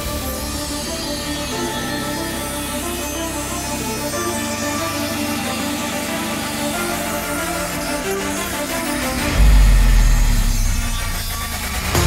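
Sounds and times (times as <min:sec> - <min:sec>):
music with sustained notes: 0:00.0 - 0:12.0
bass line: 0:07.3 - 0:12.0.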